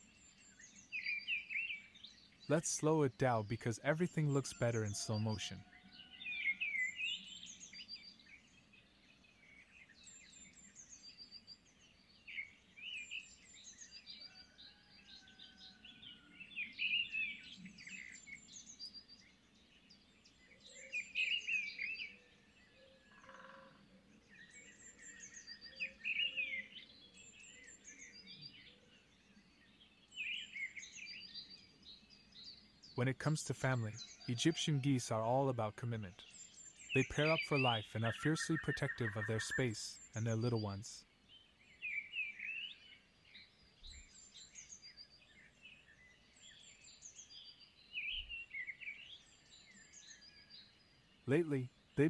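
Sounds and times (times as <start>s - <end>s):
songbirds chirping and singing: 0.1s - 23.1s, 24.0s - 51.7s.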